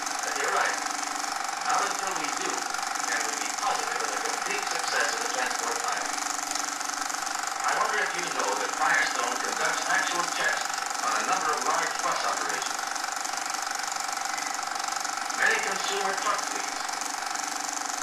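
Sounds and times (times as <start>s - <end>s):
constant hiss: 0.0s - 0.8s, 1.6s - 6.2s, 7.6s - 12.7s, 15.2s - 16.9s
film projector mechanical chatter: 0.0s - 18.0s
steady hum: 0.0s - 18.0s
muffled voices: 0.2s - 0.8s, 1.6s - 6.1s, 7.6s - 12.7s, 15.4s - 16.8s.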